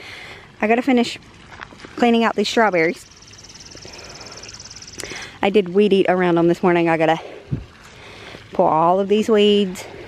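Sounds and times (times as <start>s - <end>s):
faint outdoor background: 0.0s - 10.0s
bird fast dry trill: 3.0s - 5.2s.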